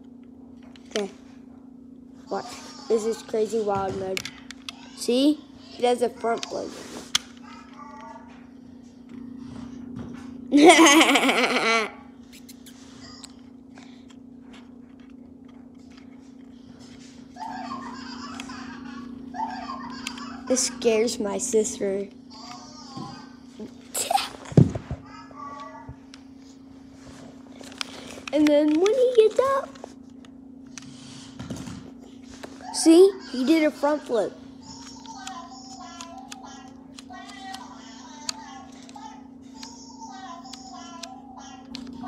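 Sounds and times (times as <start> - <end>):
steady low hum: 0.0 - 42.0
laughter-like sounds: 10.5 - 11.9.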